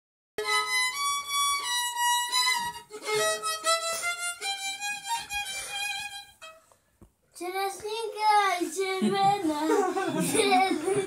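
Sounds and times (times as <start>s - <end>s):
solo violin melody: 0.4s - 6.8s.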